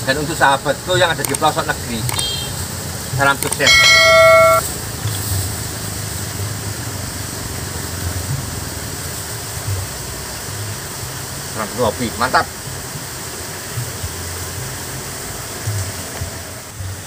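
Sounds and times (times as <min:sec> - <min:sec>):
loud short beep: 0:03.5 - 0:04.6.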